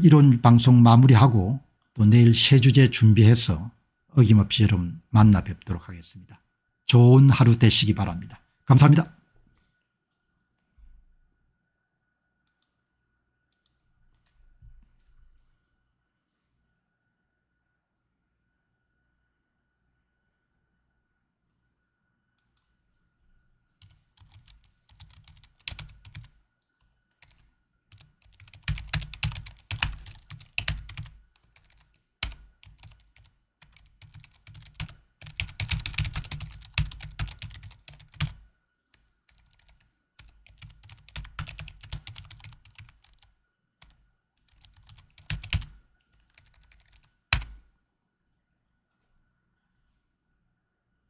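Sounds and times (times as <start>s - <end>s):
typing on computer keyboard: 23.8s - 26.4s, 27.2s - 38.4s, 39.3s - 47.6s.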